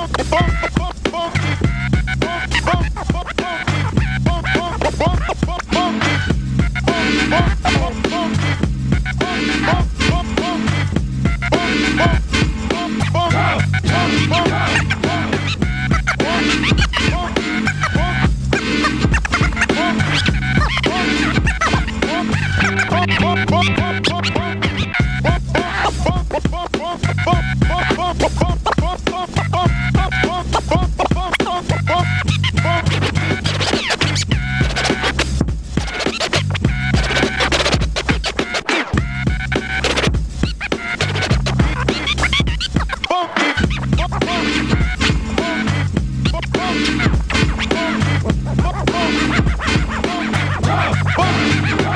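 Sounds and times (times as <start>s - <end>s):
hip hop beat with bassline: 0.0s - 51.9s
vinyl scratching: 0.0s - 51.9s.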